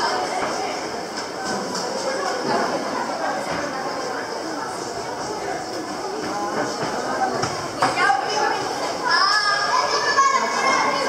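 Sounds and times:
chatter of visitors: 0.0 - 11.0.

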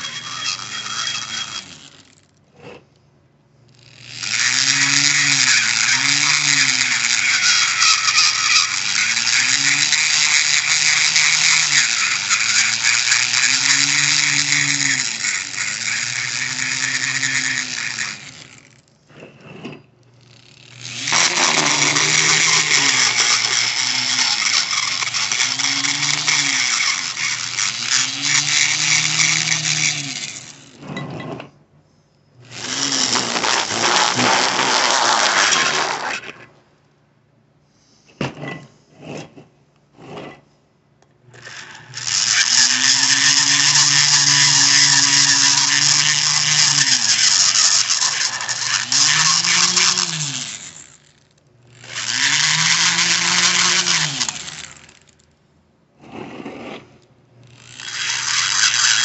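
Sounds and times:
rotary tool wire brush on metal: 0.0 - 2.8, 3.8 - 31.5, 32.4 - 36.4, 41.4 - 55.2, 57.5 - 59.0.

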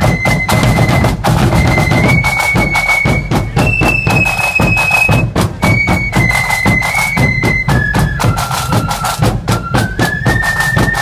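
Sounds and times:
drums beating steady rhythm: 0.0 - 11.0
flutes playing melody: 0.0 - 11.0.

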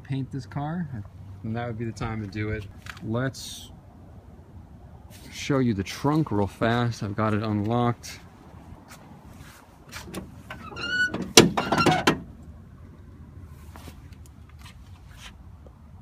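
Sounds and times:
trunk lid clunk: 10.0 - 12.4.

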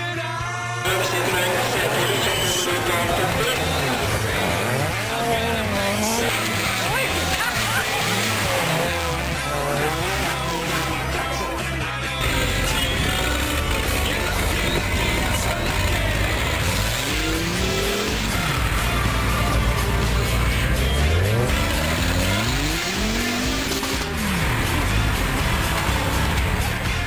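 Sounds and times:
music: 0.0 - 27.0
buggy engine revving: 0.8 - 27.0.

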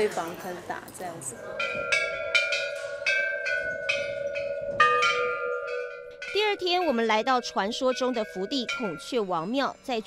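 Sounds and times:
metal bells ringing: 0.0 - 10.0.

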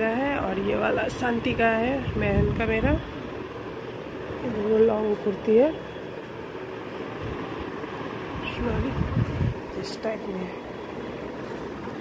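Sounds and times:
steady whooshing noise: 6.3 - 12.0.

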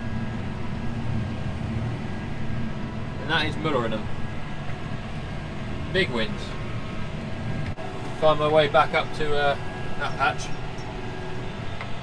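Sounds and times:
tractor engine droning: 0.0 - 12.0.

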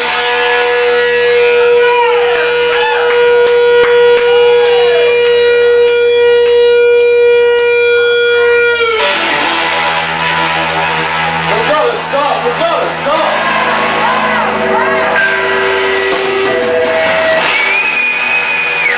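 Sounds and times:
drum and cymbal hits: 0.0 - 4.2, 15.4 - 18.9
audience cheering: 0.0 - 6.4, 13.1 - 18.9
electric guitar sustained note: 0.0 - 18.9.

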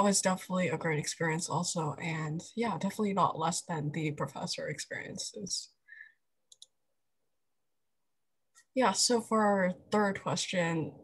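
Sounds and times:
faint quick clicks: 6.5 - 6.8.

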